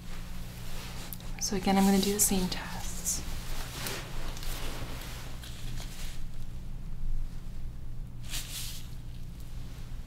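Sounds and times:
gloved hands rustling fabric: 0.0 - 6.6
low steady hum: 0.0 - 10.0.

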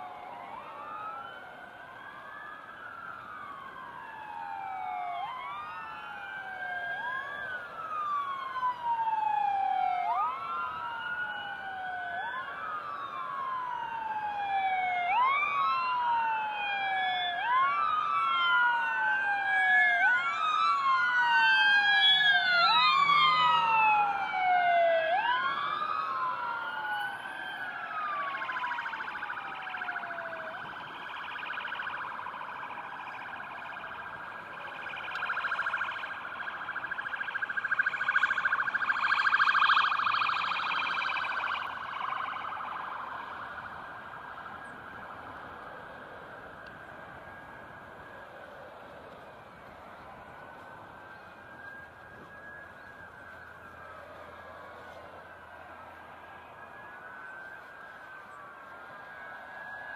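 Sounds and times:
fast warbling siren yelp: 0.0 - 48.6, 49.2 - 59.9
wailing sirens: 0.0 - 59.9.

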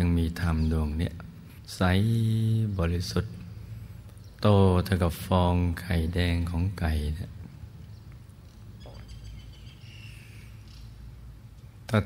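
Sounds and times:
man speaking: 0.0 - 3.4, 4.4 - 7.4
low background hum: 0.0 - 12.0.

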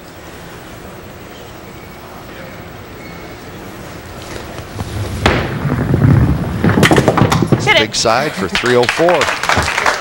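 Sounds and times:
bowling ball rolling on wooden lane: 3.8 - 8.0
ball striking bowling pins: 4.2 - 8.2
sharp crack: 4.3 - 7.8.

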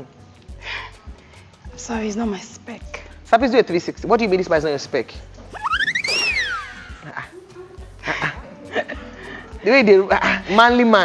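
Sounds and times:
background music: 0.0 - 11.0
comic whistling slide effect: 5.6 - 7.0.

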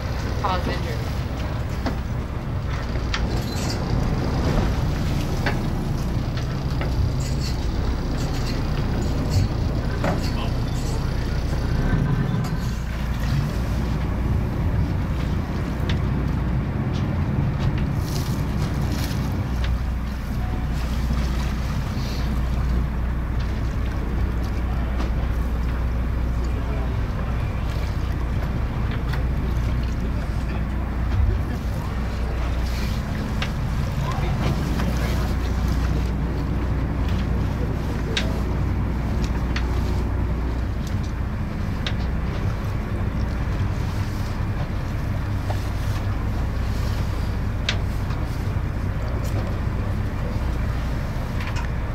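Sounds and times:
boat engine humming: 0.0 - 51.9
faint clicks and knocks: 15.2 - 19.9.

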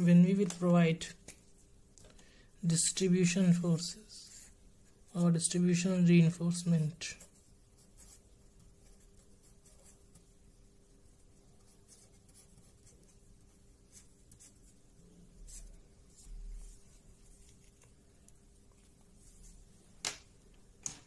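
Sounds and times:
marker scratching on paper: 7.2 - 14.8, 15.4 - 17.6.

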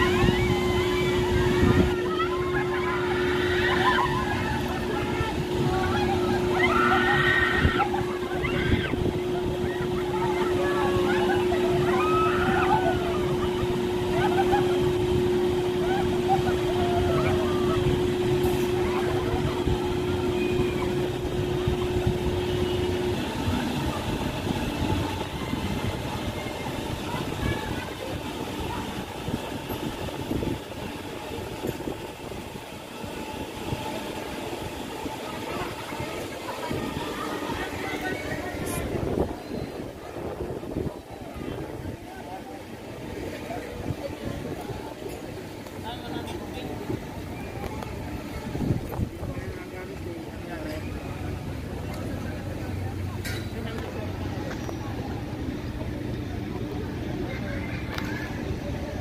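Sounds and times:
people shouting: 0.0 - 9.0
crowd and machinery din: 0.0 - 59.0
ride machine hum: 0.0 - 59.0.

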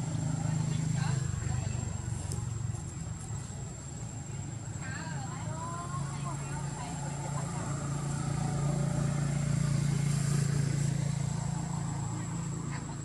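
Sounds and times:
vehicle engine droning: 0.0 - 13.0.

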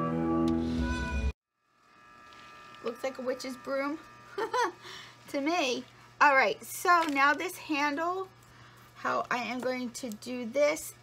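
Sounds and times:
organ-like background music: 0.0 - 1.3
woman speaking: 2.8 - 4.0, 5.3 - 8.4, 9.0 - 11.0.

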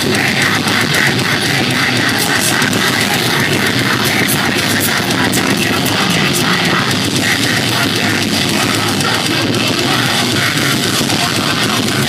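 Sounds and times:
heavy metal band playing live: 0.0 - 12.0
cymbal crashes: 4.2 - 8.6.

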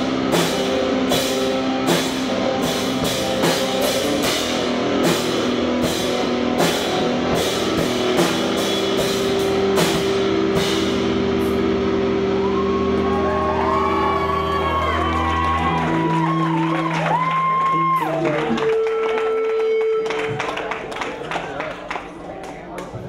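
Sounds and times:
distorted guitar chord ringing: 0.0 - 15.0
screamo band playing live: 0.0 - 21.9.

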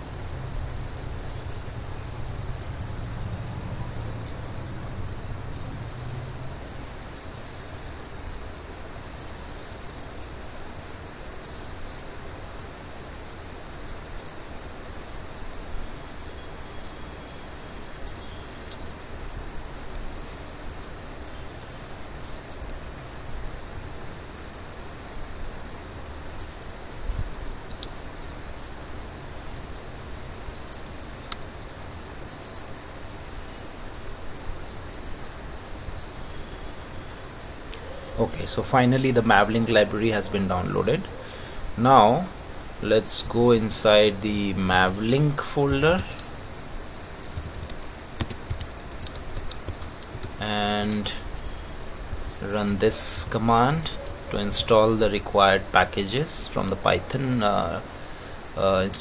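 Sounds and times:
low hum: 0.0 - 12.5
faint high whine: 0.0 - 59.0
room tone hiss and hum: 0.0 - 59.0
faint clicks: 27.6 - 28.0, 31.0 - 31.7, 47.2 - 51.5.

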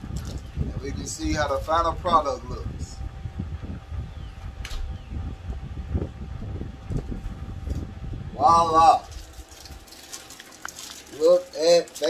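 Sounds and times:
low rumble: 0.0 - 9.9.

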